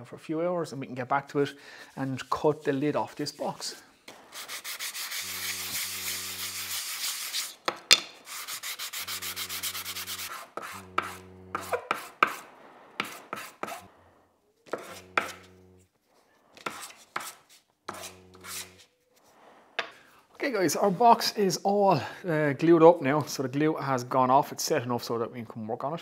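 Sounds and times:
wood blocks rubbed on sandpaper: 0:01.9 - 0:14.0, 0:14.6 - 0:19.5.

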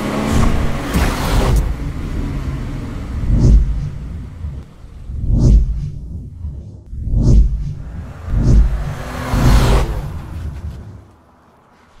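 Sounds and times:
deep booms: 0:00.4 - 0:11.0
rising whoosh: 0:03.1 - 0:11.3.

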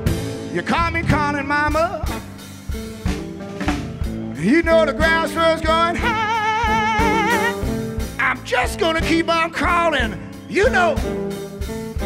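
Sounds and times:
drum strokes: 0:00.0 - 0:09.4
live blues band: 0:00.0 - 0:12.0.

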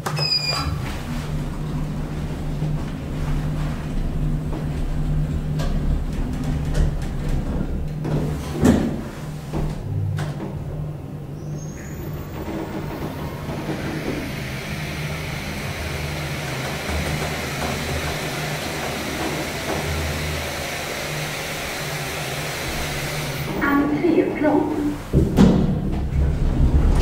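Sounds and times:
elevator hum and hiss: 0:00.2 - 0:27.0
rising whistle: 0:11.4 - 0:15.6.

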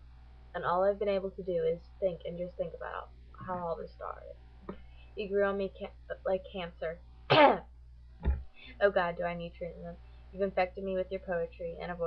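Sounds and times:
woman coughing: 0:07.3 - 0:07.6.

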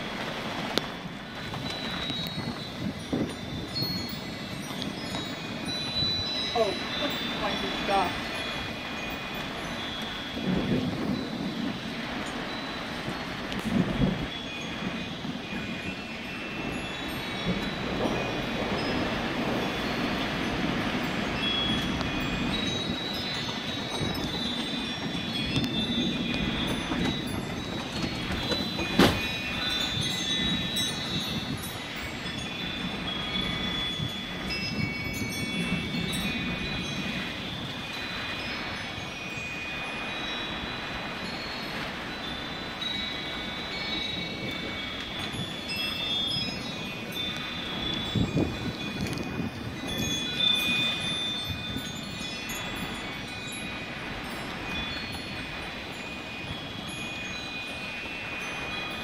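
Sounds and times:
gusty wind rushing: 0:00.0 - 0:59.0
wind chimes ringing: 0:00.0 - 0:59.0.

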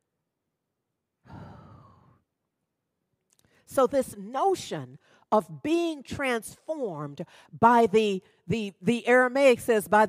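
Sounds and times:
person sighing: 0:01.2 - 0:02.2.

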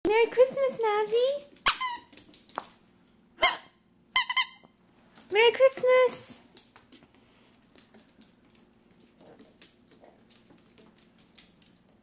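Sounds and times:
squeaky toy squeaking: 0:01.6 - 0:02.1, 0:03.4 - 0:04.7.

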